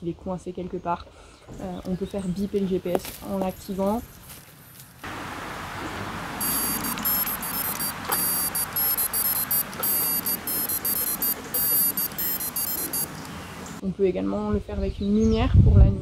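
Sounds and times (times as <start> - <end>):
gps tracker locator beeps: 6.4 - 13.3.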